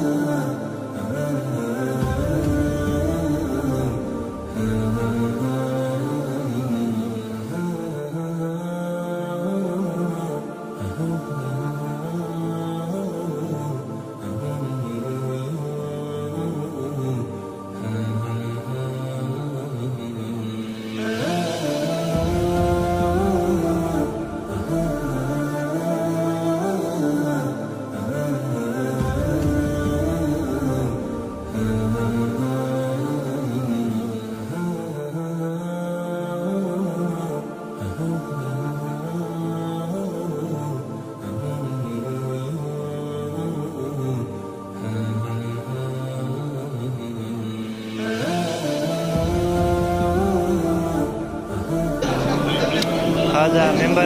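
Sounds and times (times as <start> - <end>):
deep male voice chanting: 0.0 - 54.0
music: 0.0 - 54.0
man chanting held notes: 48.1 - 54.0.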